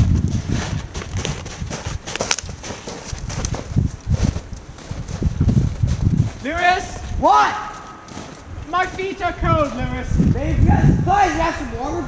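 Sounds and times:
footsteps in snow: 0.0s - 10.6s.

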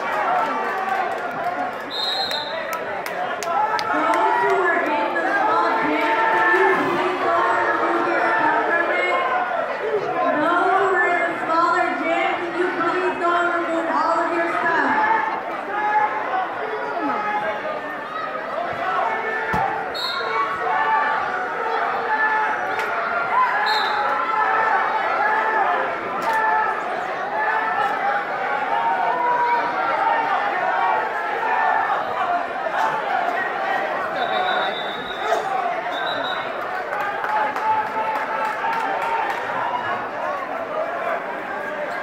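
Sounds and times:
spectators talking: 0.0s - 42.0s.

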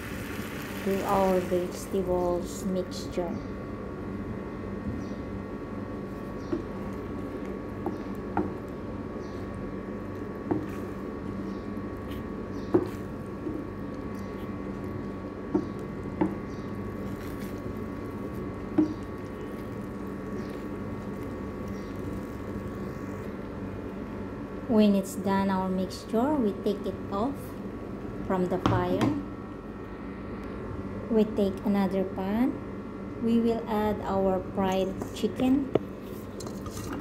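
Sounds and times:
sauce cooking in a frying pan: 0.0s - 2.0s
steady hum: 0.0s - 37.0s.

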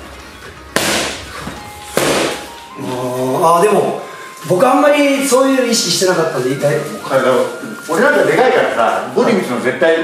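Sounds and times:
boxing gloves hitting punch mitts: 0.7s - 2.5s.

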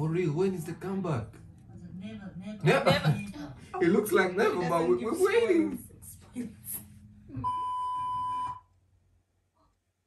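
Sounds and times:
test tone beep: 7.4s - 8.7s.

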